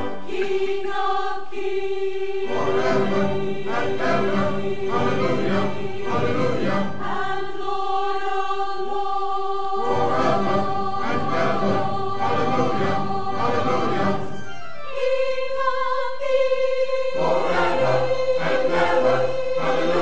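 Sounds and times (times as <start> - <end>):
choir singing: 0.0 - 20.0.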